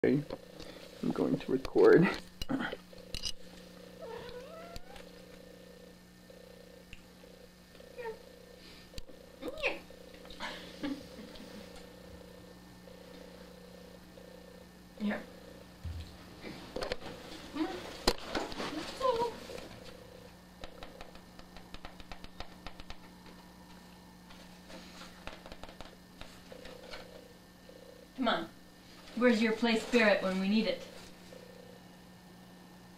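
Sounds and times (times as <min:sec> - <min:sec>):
cat purring: 0:00.0 - 0:32.0
steady low hum: 0:00.0 - 0:32.9
cat meowing: 0:04.0 - 0:05.0.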